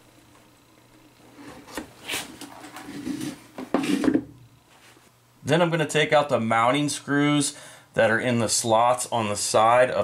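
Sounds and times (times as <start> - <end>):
plastic wastebasket rubbing and scraping: 1.4 - 4.2.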